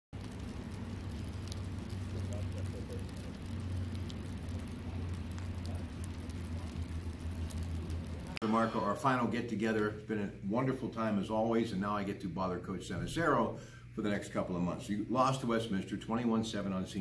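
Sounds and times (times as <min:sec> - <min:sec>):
low hum: 0:00.2 - 0:11.3.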